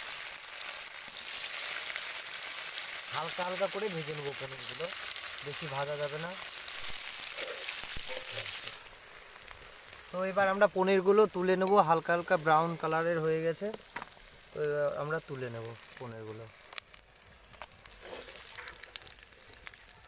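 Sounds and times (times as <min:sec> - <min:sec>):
cheese sizzling in hot oil: 0:00.0 - 0:20.0
person speaking: 0:10.1 - 0:13.8, 0:14.5 - 0:16.5.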